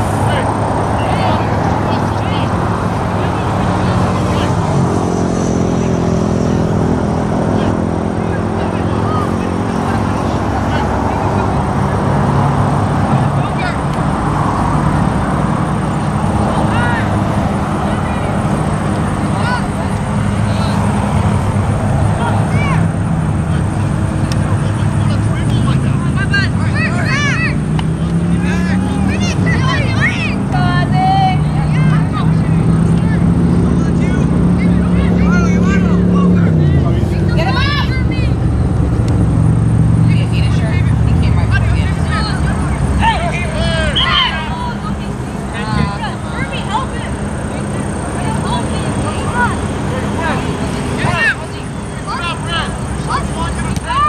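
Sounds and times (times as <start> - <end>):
low motor drone: 0.0 - 54.0
players shouting: 0.0 - 54.0.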